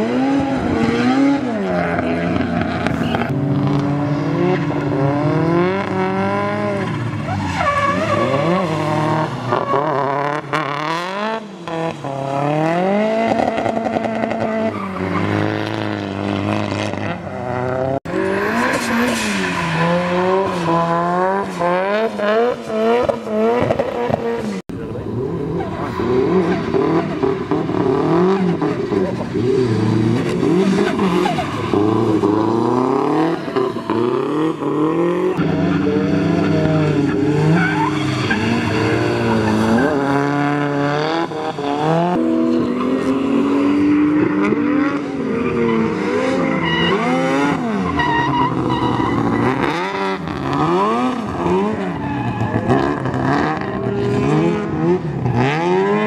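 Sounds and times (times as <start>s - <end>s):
car engines revving hard: 0.0s - 56.0s.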